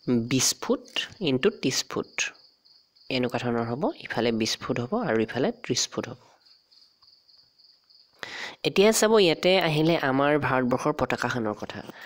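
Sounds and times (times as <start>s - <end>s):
person speaking: 0.0s - 2.4s, 3.1s - 6.3s, 8.2s - 12.0s.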